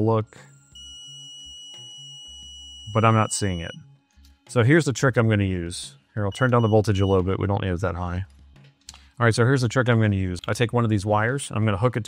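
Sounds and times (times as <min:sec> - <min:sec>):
steady electronic tone: 0:00.0 - 0:03.9.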